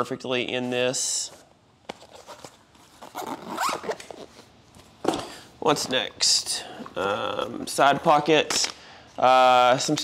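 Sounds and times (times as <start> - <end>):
zipper being pulled shut: 3.0 - 4.4.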